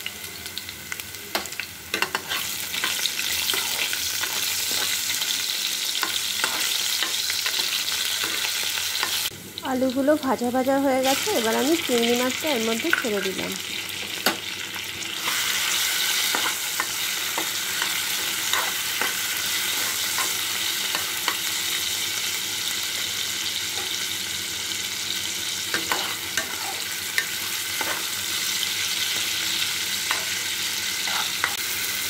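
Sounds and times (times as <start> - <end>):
food sizzling in hot oil: 0.0 - 32.0
metal spoon scraping a pan: 1.4 - 9.3, 15.2 - 21.4, 25.7 - 28.6, 30.0 - 30.4, 31.0 - 31.6.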